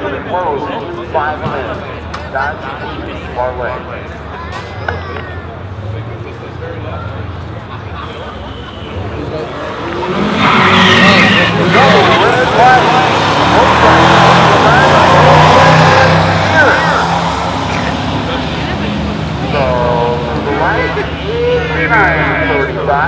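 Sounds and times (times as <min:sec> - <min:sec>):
car engine racing: 0:05.4 - 0:23.0
spectators shouting and cheering: 0:07.0 - 0:23.0.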